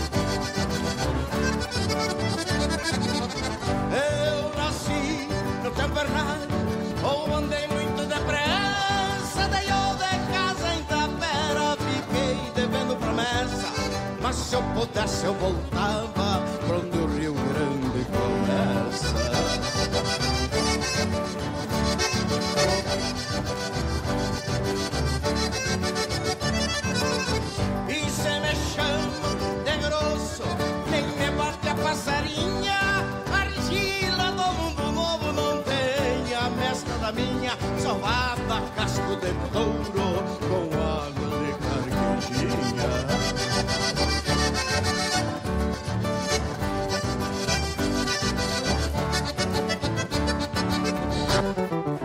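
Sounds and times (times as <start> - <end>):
acoustic guitar: 0.0 - 52.0
button accordion folk melody: 0.0 - 52.0.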